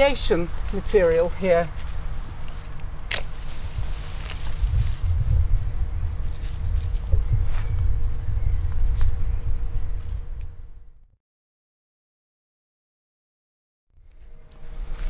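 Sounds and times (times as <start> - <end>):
wind rumble on microphone: 0.0 - 11.1
secateurs snipping and clicking: 0.7 - 4.6.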